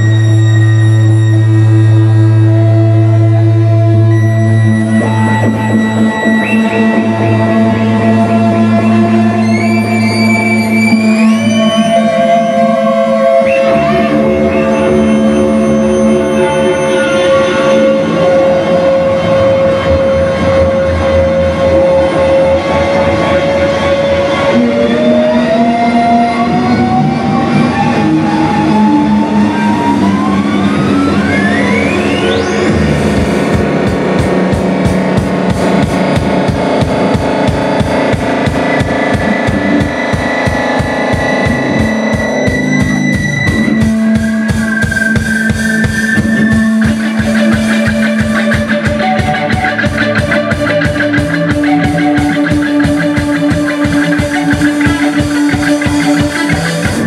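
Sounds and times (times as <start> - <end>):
high tone sliding upward: 0.0 - 20.1, 21.4 - 57.0
band playing droning noise: 0.0 - 57.0
distorted electric guitar: 0.0 - 57.0
drum kit fast beat: 32.7 - 57.0.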